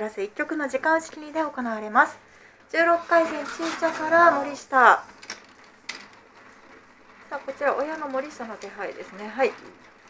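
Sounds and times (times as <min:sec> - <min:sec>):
mahjong tiles clicking: 0:02.8 - 0:10.0.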